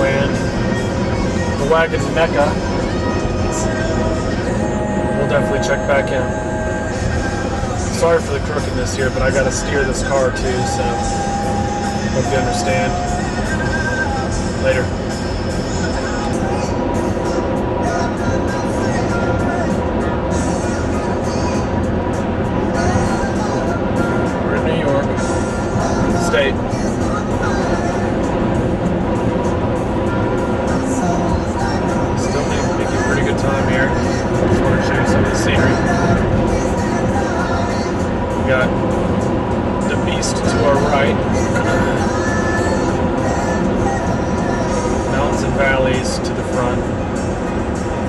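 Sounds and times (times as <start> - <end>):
music with singing on car stereo: 0.0 - 48.0
road and engine noise: 0.0 - 48.0.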